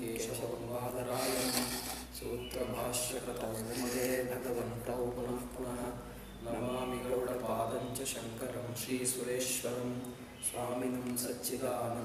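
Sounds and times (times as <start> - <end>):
man speaking: 0.0 - 12.0
cloth rubbing on microphone: 1.1 - 2.1, 3.6 - 4.2.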